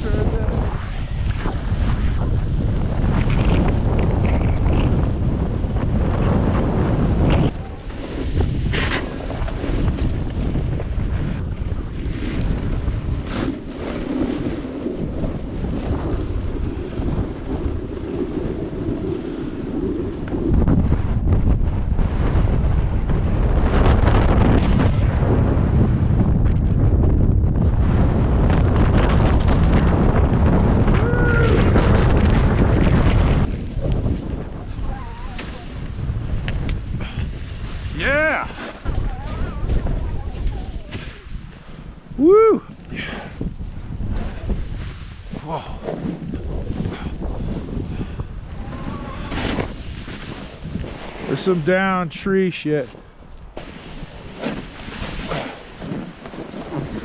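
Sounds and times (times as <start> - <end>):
snowboard scraping over snow: 0.0 - 53.0, 53.6 - 57.0
wind rushing over microphone: 0.0 - 57.0.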